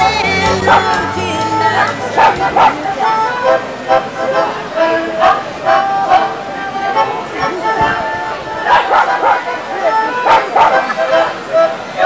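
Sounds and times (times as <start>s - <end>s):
crowd chatter: 0.0s - 12.0s
dog barking: 0.6s - 0.9s, 2.2s - 2.8s, 8.6s - 9.6s, 10.2s - 10.9s.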